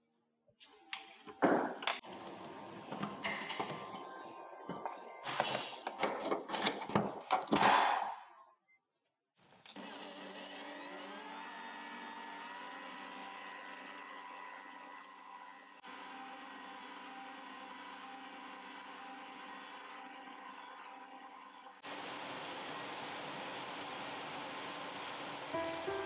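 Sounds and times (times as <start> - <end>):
stand mixer motor whine: 9.7 - 26.0.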